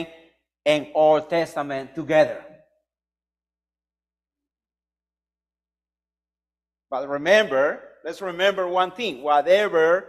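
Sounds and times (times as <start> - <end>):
man speaking: 0.7 - 2.6, 6.9 - 10.0.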